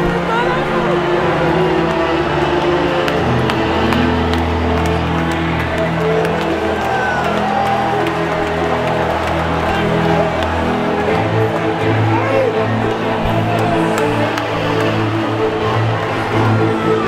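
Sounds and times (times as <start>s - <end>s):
congregation shouting and cheering: 0.0s - 17.0s
worship music with deep bass: 0.0s - 17.0s
sharp hand claps: 1.3s - 11.8s, 12.4s - 16.2s.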